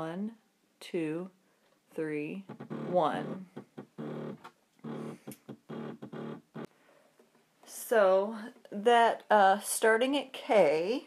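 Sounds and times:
woman speaking louder: 2.0s - 3.4s.

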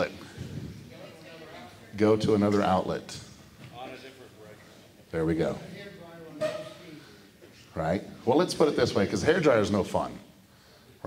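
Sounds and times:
large hall room tone: 0.0s - 11.0s.

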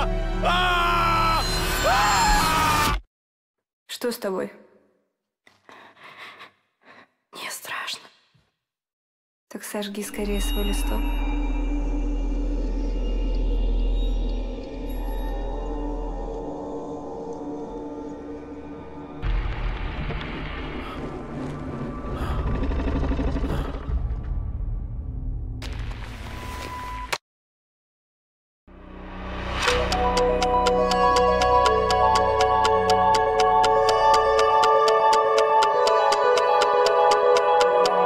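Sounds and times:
person whispering: 7.4s - 8.1s.

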